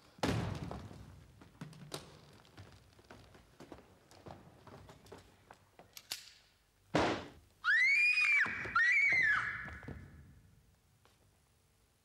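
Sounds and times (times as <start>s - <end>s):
shrill high-pitched cries: 7.6s - 9.9s.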